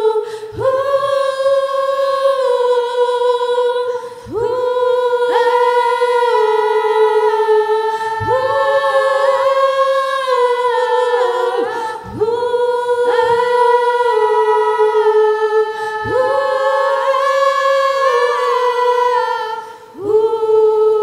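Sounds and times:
women singing in harmony: 0.0 - 21.0.

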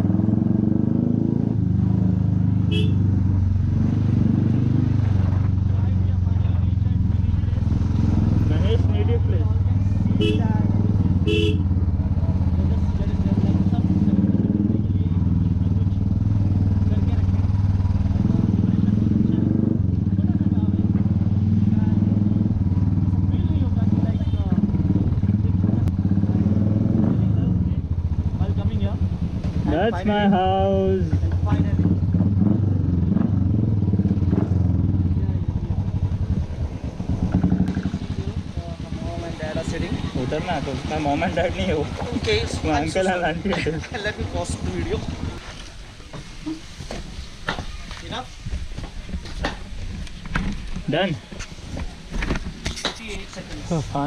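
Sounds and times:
motorcycle engine running: 0.0 - 45.8.

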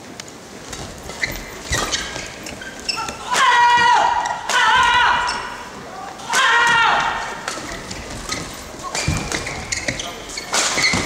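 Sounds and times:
shoes squeaking on court floor: 0.3 - 3.4, 5.2 - 5.8, 7.3 - 11.0.

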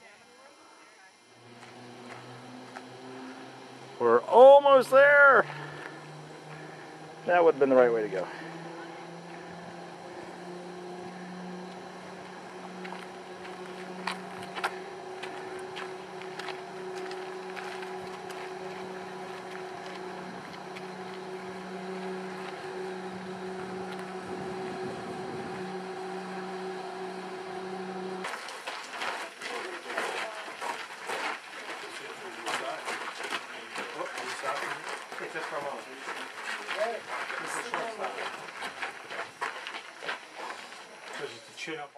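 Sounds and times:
cable car machinery hum: 0.6 - 28.3
people chattering: 6.1 - 23.8.

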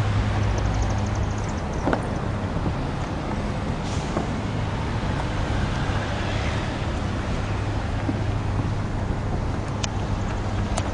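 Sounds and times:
outdoor background rumble: 0.0 - 10.9.

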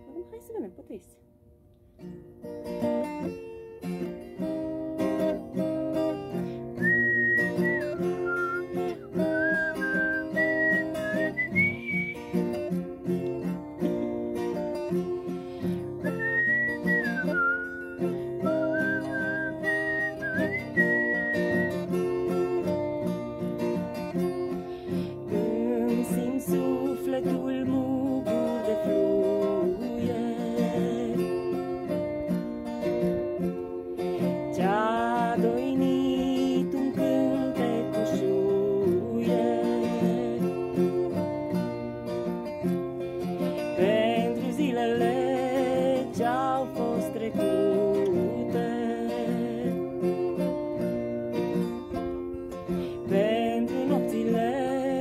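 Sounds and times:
acoustic guitar strumming: 1.9 - 55.0
woman whistling: 6.8 - 12.3, 16.0 - 21.9
wordless singing voice: 24.2 - 32.0, 34.1 - 41.7, 43.6 - 50.5, 52.8 - 55.0.

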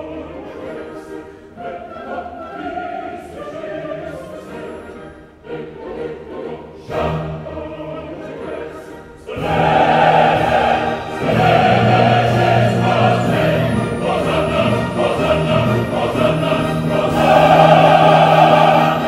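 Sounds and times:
opera chorus singing: 0.0 - 19.0.

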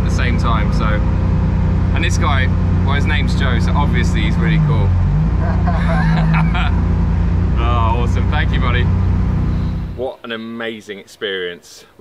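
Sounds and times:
man talking: 0.0 - 1.1, 1.9 - 4.9, 7.5 - 8.9, 10.0 - 12.0
car engine running at low revs: 0.0 - 10.0
people's voices: 7.5 - 8.9.

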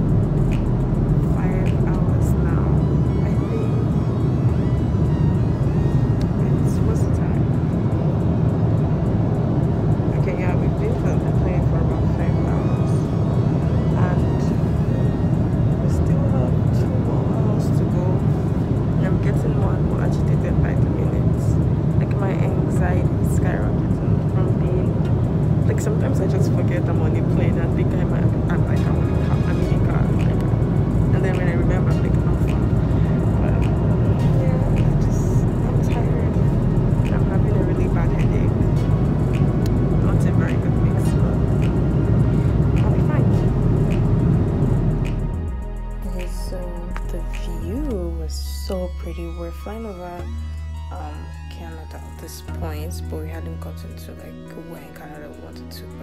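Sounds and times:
airliner cabin rumble: 0.0 - 47.8.

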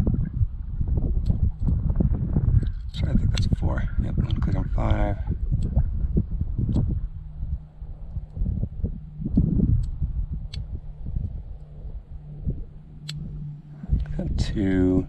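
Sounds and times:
wind rumble on microphone: 0.0 - 15.0.

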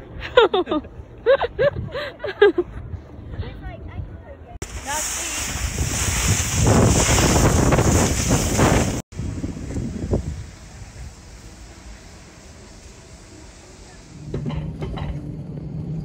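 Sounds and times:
wind on microphone: 1.4 - 11.8
snowboard scraping over snow: 4.6 - 16.0.

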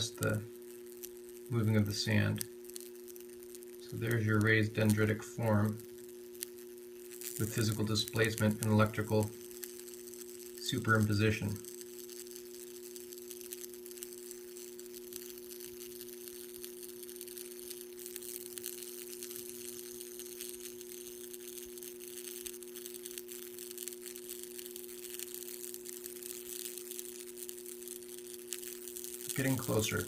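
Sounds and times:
faint crackling hiss: 0.0 - 30.0
steady electrical hum: 0.0 - 30.0.

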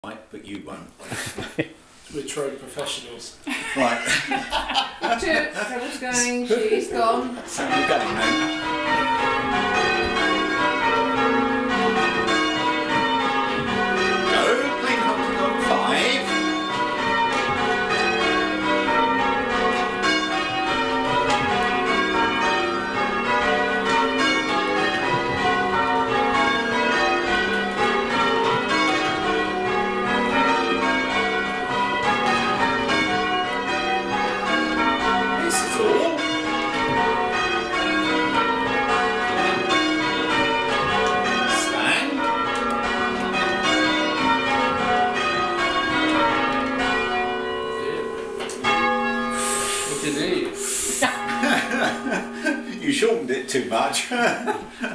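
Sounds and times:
church bells ringing: 2.8 - 54.9.

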